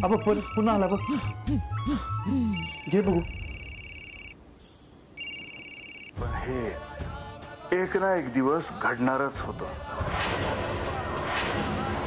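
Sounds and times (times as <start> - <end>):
telephone ringing: 0.0 - 1.4, 2.5 - 4.4, 5.2 - 6.2.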